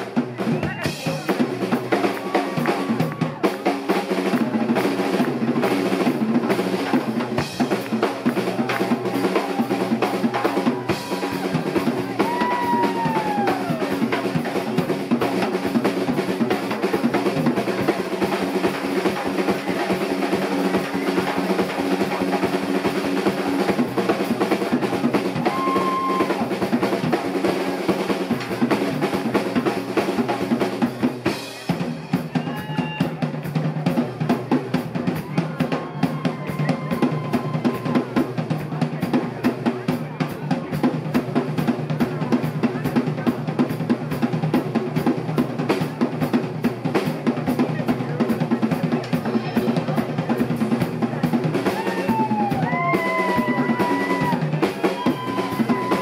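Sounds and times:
fast kick and snare drumming: 0:00.0 - 0:56.0
rock band playing: 0:00.0 - 0:56.0.

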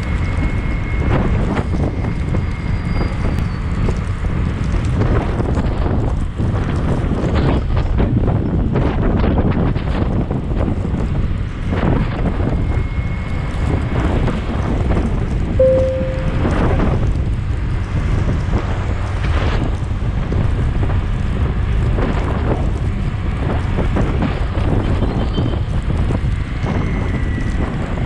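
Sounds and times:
wind buffeting microphone: 0:00.0 - 0:28.0
short high beep: 0:15.6 - 0:16.8.

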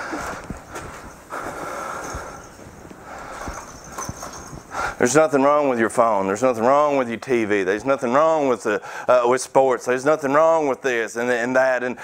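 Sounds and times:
faint rustle: 0:00.0 - 0:05.0
footsteps soft thuds: 0:00.0 - 0:05.0.

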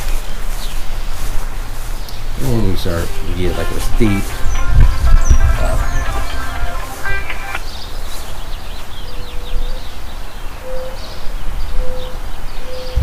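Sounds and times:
short low calls: 0:02.3 - 0:07.6
wind rumble on microphone: 0:04.4 - 0:06.4
faint bird chirps: 0:10.6 - 0:13.0.

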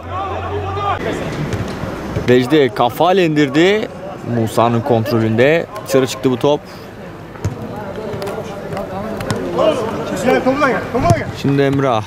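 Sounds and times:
players calling out: 0:00.0 - 0:12.0
football thudding: 0:07.4 - 0:09.6.

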